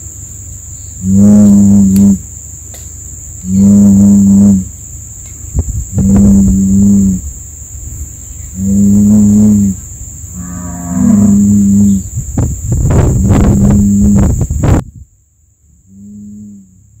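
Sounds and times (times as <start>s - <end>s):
bull mooing: 10.4s - 12.0s.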